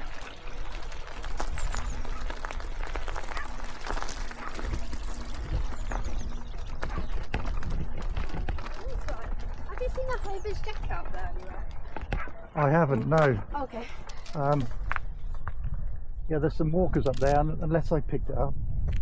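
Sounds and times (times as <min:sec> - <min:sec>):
bike rattling over rocky trail: 0:00.0 - 0:15.6
wind on microphone: 0:03.9 - 0:12.4, 0:14.6 - 0:19.0.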